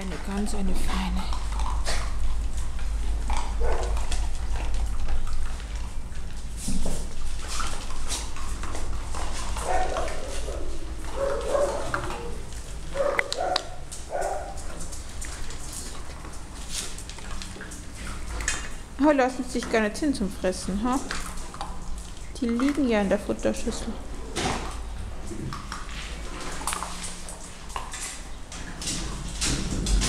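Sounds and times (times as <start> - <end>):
dogs eating from metal bowls: 0.0 - 30.0
dog barking: 3.6 - 4.0, 9.6 - 14.6.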